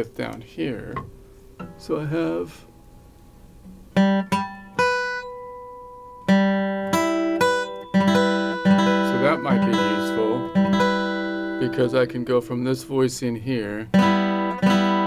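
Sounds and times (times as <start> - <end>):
acoustic guitar chords ringing: 0.0 - 15.0.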